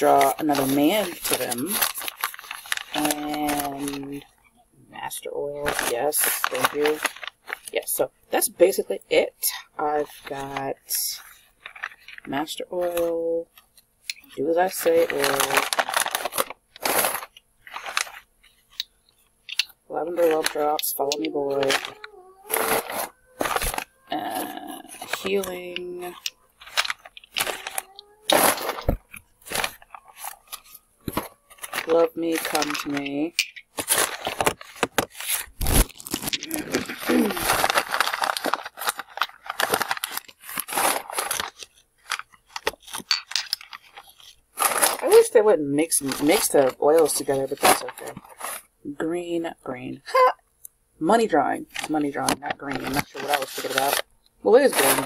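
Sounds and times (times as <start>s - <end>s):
newspaper rustling: 0.0s - 4.2s, 5.6s - 7.9s, 10.0s - 13.4s, 14.2s - 18.8s, 19.5s - 48.7s, 51.4s - 55.0s
crumpled paper crinkling: 0.0s - 4.3s, 5.1s - 7.8s, 10.0s - 18.8s, 19.5s - 48.7s, 51.6s - 55.0s
boxes clicking: 19.5s - 44.0s.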